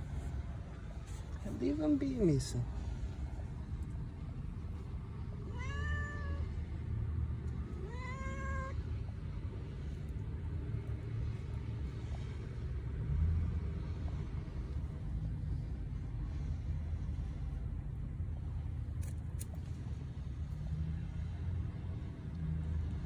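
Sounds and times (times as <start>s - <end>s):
steady low rumble: 0.0s - 23.0s
cat meowing: 5.4s - 6.6s, 7.7s - 8.8s.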